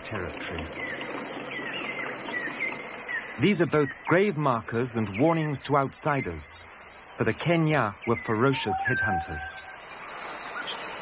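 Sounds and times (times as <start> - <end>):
steady background hiss: 0.0 - 11.0
bird whistling calls: 8.0 - 10.8.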